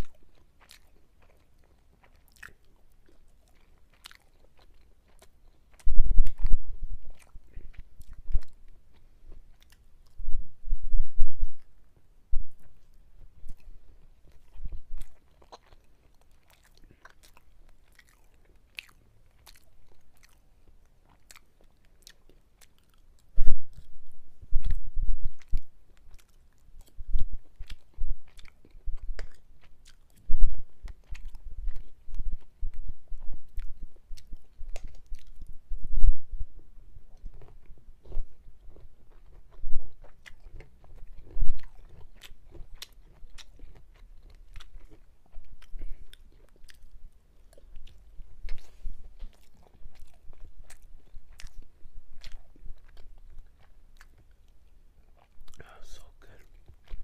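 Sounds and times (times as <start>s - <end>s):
person chewing food: 0.0s - 35.8s, 36.5s - 57.0s.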